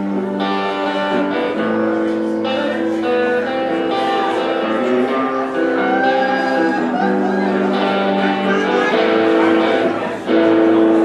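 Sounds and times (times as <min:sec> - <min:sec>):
electric guitar playing: 0:00.0 - 0:11.0.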